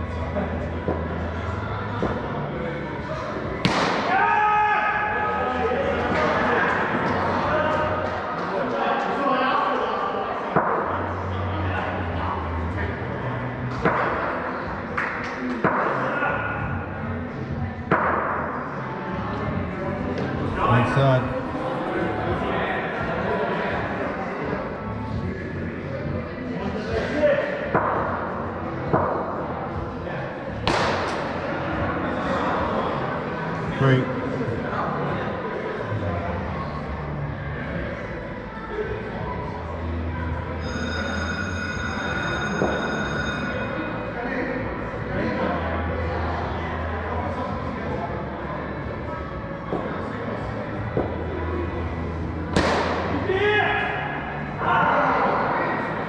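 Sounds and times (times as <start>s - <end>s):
ball hitting netting and boards: 3.6s - 4.1s, 30.6s - 31.4s, 52.5s - 53.2s
bat striking ball: 3.6s - 4.1s.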